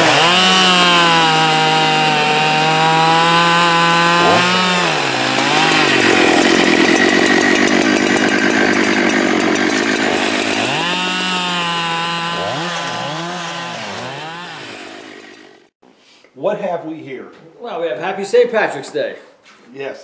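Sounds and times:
chainsaw cutting log: 0.0s - 15.7s.

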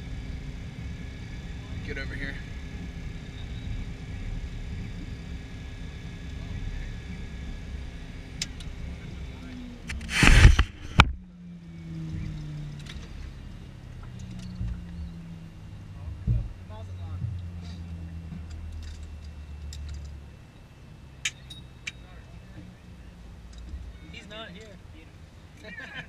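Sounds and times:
jet engines idling hum with whine: 0.0s - 26.0s.

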